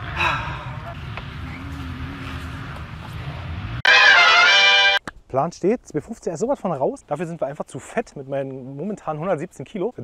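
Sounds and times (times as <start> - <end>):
distant motocross bike engines: 0.0 - 4.9
brass music sting: 3.8 - 5.0.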